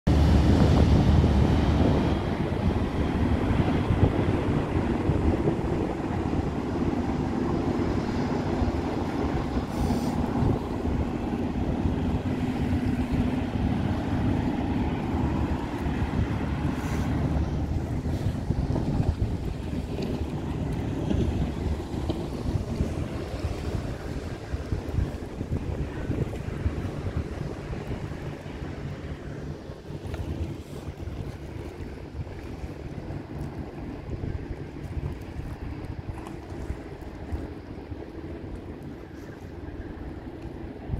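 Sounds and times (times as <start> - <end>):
choppy river water: 0.0 - 40.9
ferry engine drone: 0.1 - 40.9
wind buffeting microphone: 0.1 - 40.9.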